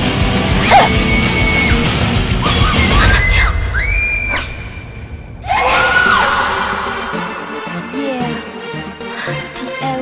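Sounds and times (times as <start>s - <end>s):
dramatic action music: 0.0s - 9.8s
high-pitched screams: 2.4s - 4.7s, 5.4s - 6.9s.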